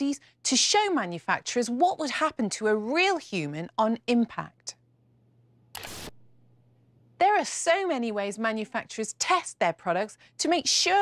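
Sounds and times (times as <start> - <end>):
faint low steady hum: 0.0 - 11.0
short burst of noise: 5.8 - 6.3.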